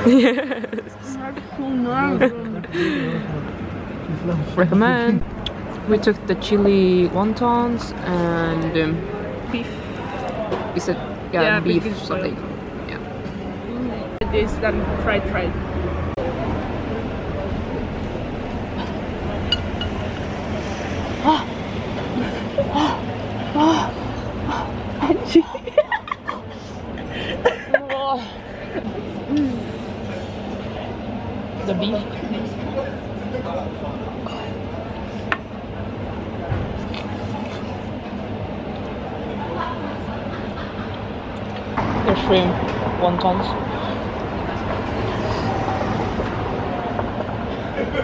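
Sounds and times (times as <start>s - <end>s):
low traffic rumble: 0.0s - 48.0s
people's voices: 0.0s - 48.0s
street background noise: 0.0s - 48.0s.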